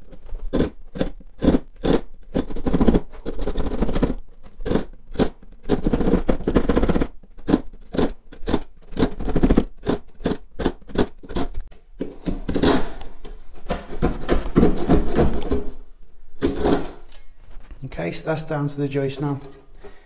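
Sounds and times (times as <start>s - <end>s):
hand saw cutting wood: 0.5s - 13.1s, 16.4s - 17.1s.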